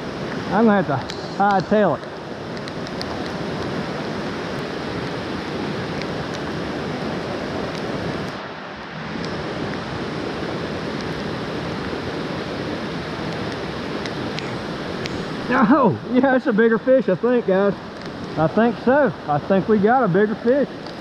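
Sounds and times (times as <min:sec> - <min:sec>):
heavy rain on water: 0:00.0 - 0:21.0
stream rushing: 0:00.0 - 0:21.0.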